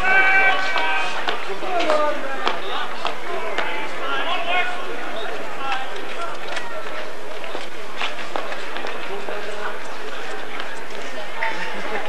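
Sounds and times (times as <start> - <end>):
distant players shouting: 0.0 - 7.1.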